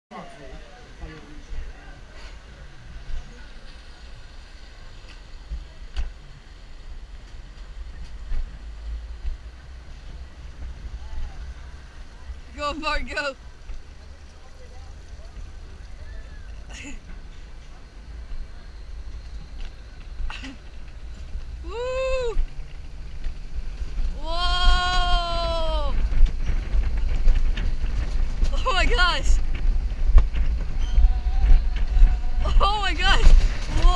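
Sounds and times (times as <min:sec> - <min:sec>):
bobsled car rumbling on track: 0:00.1 - 0:33.9
wheels clattering on rails: 0:00.1 - 0:33.9.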